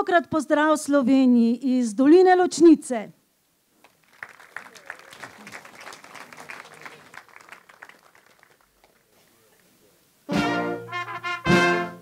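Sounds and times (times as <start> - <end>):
audience applauding: 3.8 - 9.7.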